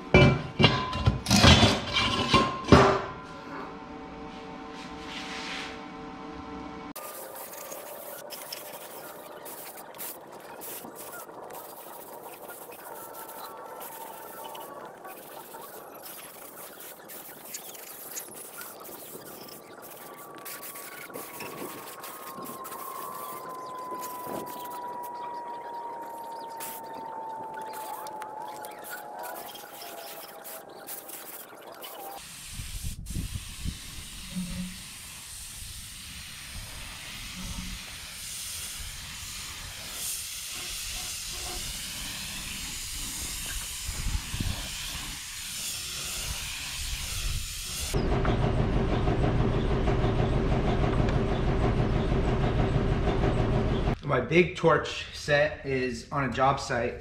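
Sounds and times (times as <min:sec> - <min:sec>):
low mechanical hum: 0:01.7 - 0:31.0, 0:47.9 - 0:54.0
spray can hissing: 0:07.0 - 0:24.9, 0:26.6 - 0:27.0, 0:27.6 - 0:48.0
wind on microphone: 0:18.3 - 0:29.8, 0:32.5 - 0:34.9, 0:42.4 - 0:45.3.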